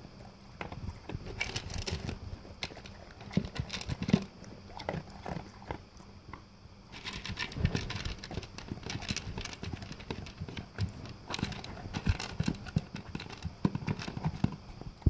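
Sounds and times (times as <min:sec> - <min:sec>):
dog crunching kibble: 0:00.0 - 0:15.0
kibble clicking against plastic bowl: 0:00.6 - 0:05.8, 0:06.9 - 0:14.7.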